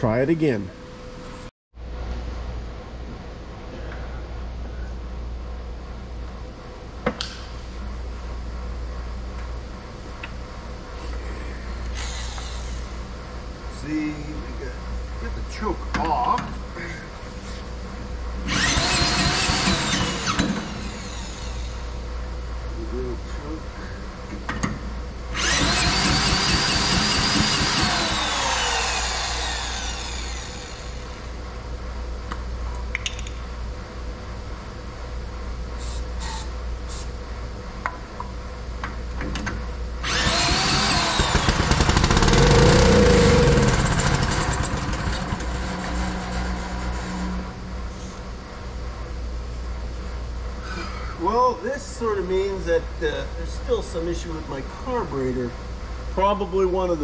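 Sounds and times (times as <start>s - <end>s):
drill cranking engine over: 18.5s - 21.7s, 25.4s - 31.2s, 40.0s - 47.6s.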